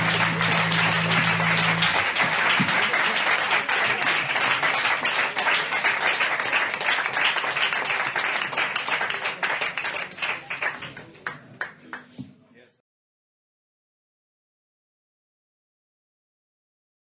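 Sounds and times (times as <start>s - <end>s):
band low chord ringing: 0.0s - 2.0s
audience clapping: 0.0s - 12.2s.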